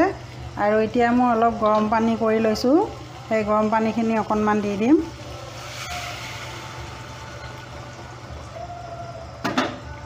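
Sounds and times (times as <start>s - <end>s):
hot water pouring into a pan: 1.1s - 8.8s.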